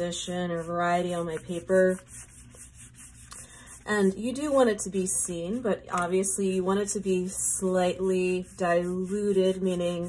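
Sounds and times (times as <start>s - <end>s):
paintbrush rubbing on wet paper: 0.0s - 10.0s.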